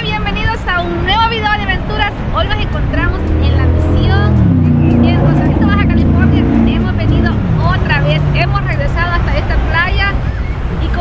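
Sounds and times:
people's voices: 0.0 - 11.0
vehicle engine droning: 0.0 - 11.0.

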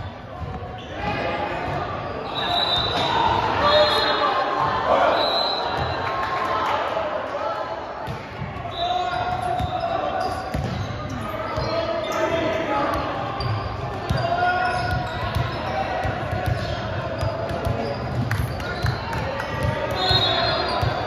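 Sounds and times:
voices echoing in a gym: 0.0 - 21.0.

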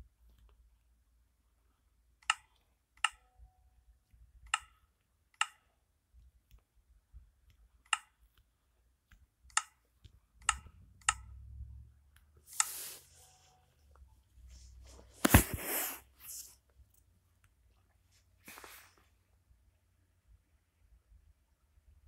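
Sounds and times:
sharp clicks: 9.1 - 9.8.

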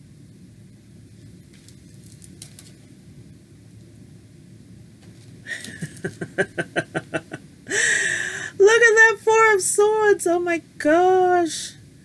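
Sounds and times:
low steady hum: 0.0 - 12.0
woman laughing: 5.5 - 8.2.

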